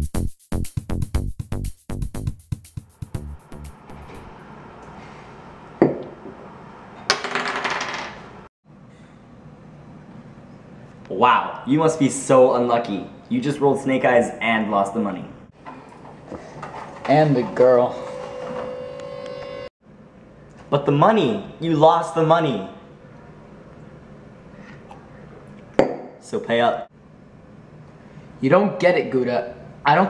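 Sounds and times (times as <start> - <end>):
dice rattling on wooden table: 7.1 - 8.2.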